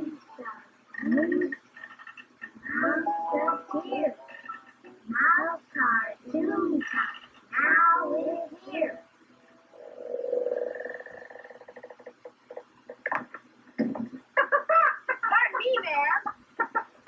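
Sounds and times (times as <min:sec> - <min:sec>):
children's voices: 0:05.1 - 0:09.0.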